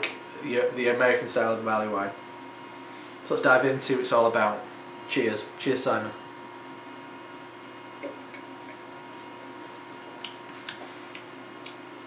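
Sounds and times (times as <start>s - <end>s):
room hum: 0.0s - 12.0s
tongue and lip clicks: 9.9s - 11.8s.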